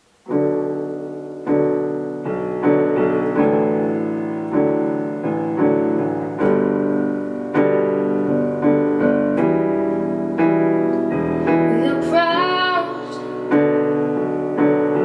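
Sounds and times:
digital piano chords: 0.0 - 15.0
woman singing: 11.6 - 13.6.

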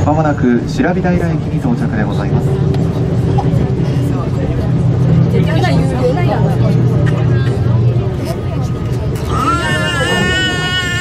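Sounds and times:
cable car low hum: 0.0 - 10.3
passengers talking: 0.0 - 11.0.

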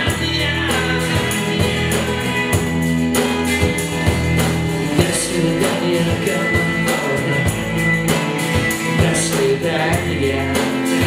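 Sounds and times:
drum kit steady beat: 0.0 - 11.0
guitars: 0.0 - 11.0
rock band playing: 0.0 - 11.0.

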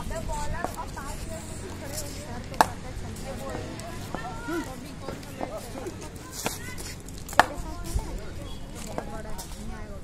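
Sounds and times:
cricket bat striking ball: 2.6 - 2.8, 7.3 - 7.6.

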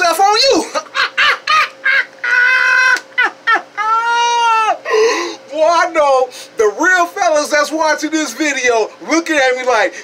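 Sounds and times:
man laughing high-pitched: 0.4 - 5.4.

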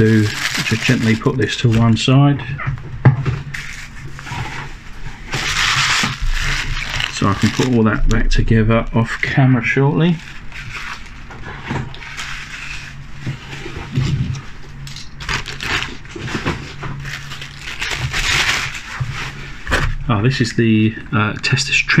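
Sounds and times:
plastic bags rustling: 0.0 - 2.2, 3.5 - 8.4, 9.0 - 19.7
low hum: 0.0 - 21.9.

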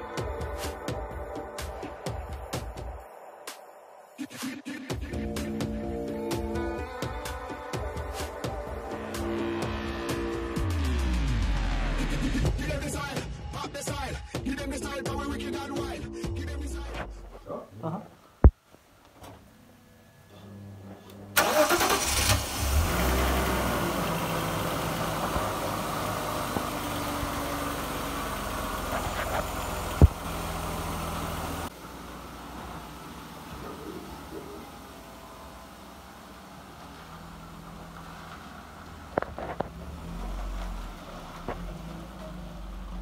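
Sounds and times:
car engine cranking and idling: 5.0 - 17.5, 21.0 - 43.0.

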